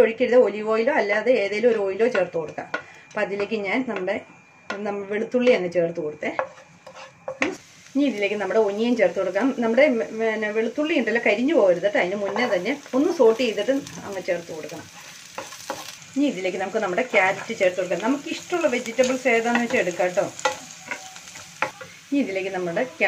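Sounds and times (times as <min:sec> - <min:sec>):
garlic frying in oil: 0:06.1 - 0:23.0
wooden spatula stirring: 0:06.5 - 0:07.4.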